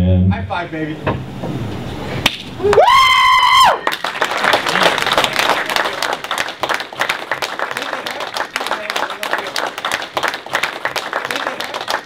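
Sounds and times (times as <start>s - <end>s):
audience clapping: 2.3s - 12.0s
loud high whoop: 2.6s - 4.0s.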